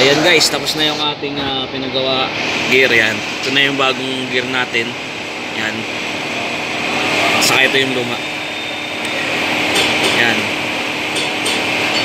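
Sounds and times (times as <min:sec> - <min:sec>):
machinery humming: 0:00.0 - 0:12.0.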